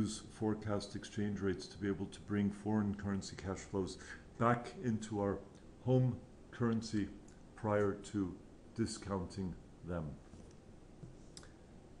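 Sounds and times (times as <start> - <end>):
person speaking: 0.0 - 10.5.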